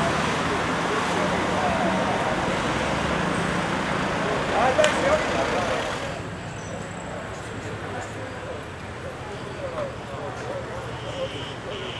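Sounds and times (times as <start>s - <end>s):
people talking: 0.0s - 2.9s, 3.9s - 11.9s
traffic noise: 0.0s - 11.9s.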